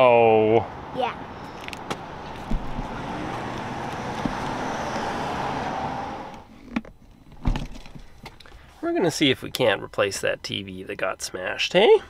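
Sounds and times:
car engine and road noise: 0.0s - 11.8s.

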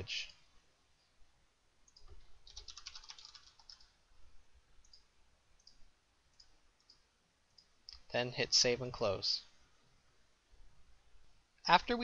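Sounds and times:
computer keyboard typing: 1.9s - 3.9s.

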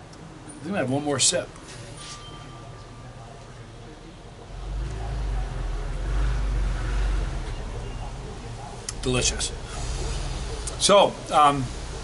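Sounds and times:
road vehicle passing by: 3.8s - 12.0s.

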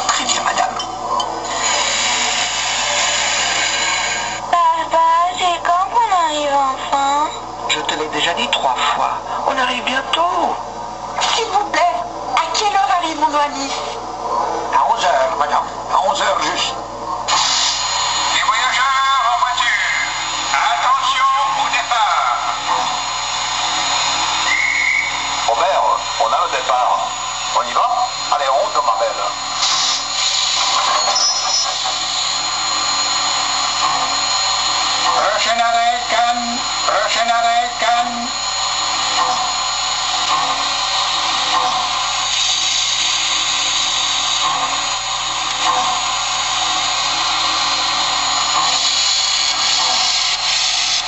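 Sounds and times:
model steam locomotive hissing: 1.4s - 4.5s, 17.3s - 51.0s
indistinct voices: 18.2s - 42.1s.

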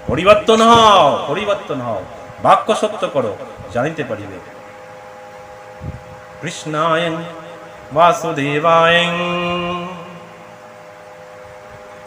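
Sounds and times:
man chanting a long note: 6.4s - 10.4s.

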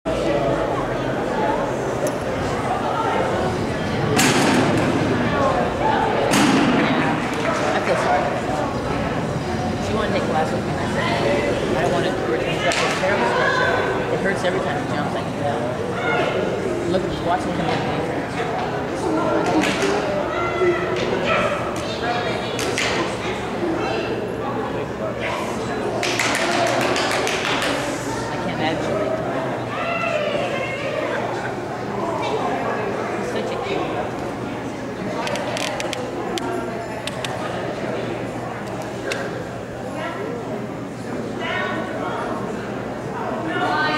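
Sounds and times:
people talking: 0.1s - 43.9s.

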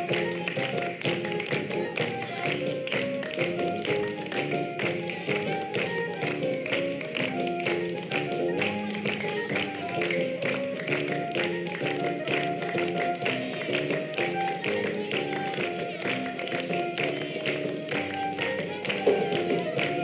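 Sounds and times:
children clapping along: 0.0s - 20.0s
upbeat music with held notes: 0.0s - 20.0s.

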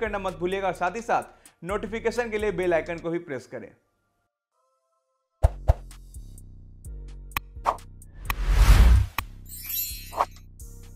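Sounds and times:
whoosh: 7.7s - 9.2s.

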